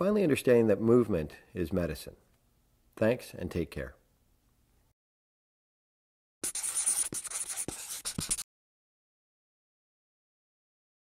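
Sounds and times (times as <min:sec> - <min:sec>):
felt-tip marker scratching: 0:06.4 - 0:08.5.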